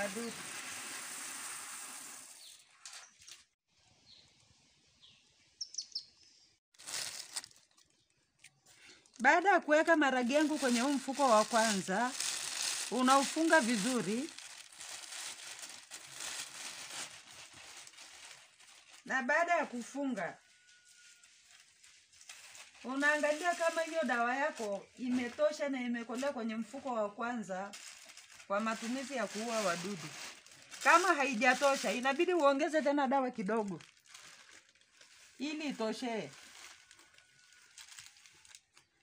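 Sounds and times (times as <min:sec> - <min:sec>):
dry beans pouring into sack: 0:00.0 - 0:02.4, 0:10.2 - 0:18.4, 0:28.5 - 0:32.4
plastic bag rustling: 0:06.8 - 0:08.2, 0:09.0 - 0:20.0, 0:20.6 - 0:26.8, 0:27.7 - 0:38.9.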